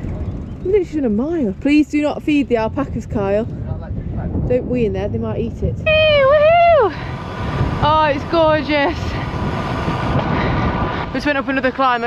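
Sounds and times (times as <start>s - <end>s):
tyre road noise rumble: 0.0s - 12.0s
wind buffeting microphone: 0.0s - 12.0s.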